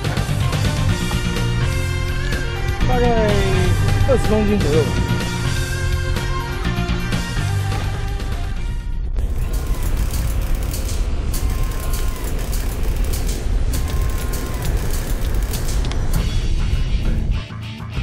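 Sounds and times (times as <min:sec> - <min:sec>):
guitar music: 0:00.0 - 0:08.6, 0:16.2 - 0:18.0
boat noise: 0:00.7 - 0:16.4
low rumble: 0:00.8 - 0:17.3
sharp clicks: 0:09.4 - 0:16.2.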